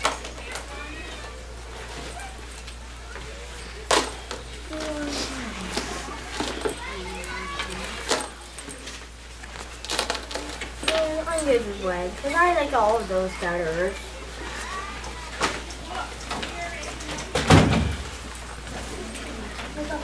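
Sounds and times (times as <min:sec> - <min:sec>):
children chattering: 0:00.0 - 0:20.0.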